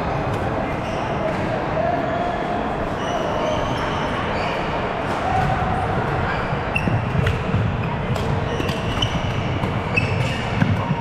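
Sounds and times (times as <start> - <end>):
shoes squeaking on wooden floor: 6.7 - 11.0.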